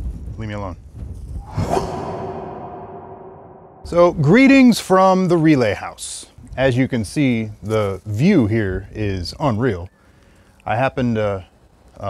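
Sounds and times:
wind buffeting microphone: 0.0 - 4.5
whoosh: 1.4 - 4.3.

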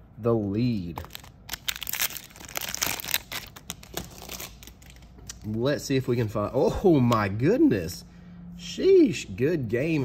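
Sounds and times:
foil wrapper tearing and crinkling: 1.0 - 5.1.

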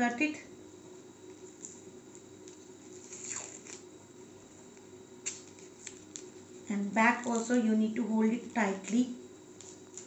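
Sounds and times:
paper tape tearing: 3.0 - 3.8, 5.2 - 6.3.

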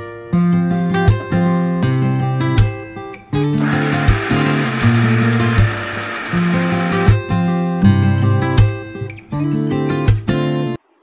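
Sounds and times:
acoustic guitar background music: 0.0 - 10.8
mixer grinder running: 3.6 - 7.2.

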